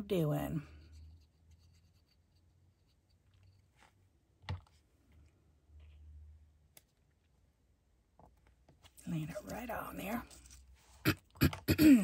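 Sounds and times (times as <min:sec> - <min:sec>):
scratching of paper scraps: 0:09.1 - 0:11.0.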